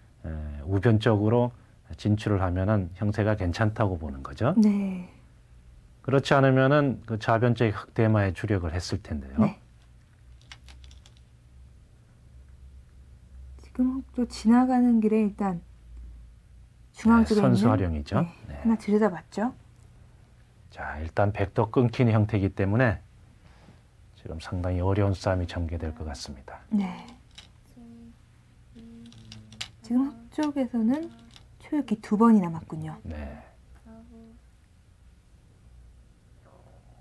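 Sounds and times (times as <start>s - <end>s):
person speaking: 9.0s - 9.6s, 17.0s - 19.0s, 24.2s - 34.4s
go stones clicking: 9.8s - 11.3s, 27.0s - 27.6s, 29.0s - 31.5s
voice humming: 27.7s - 30.3s
faint clicks: 30.4s - 31.5s.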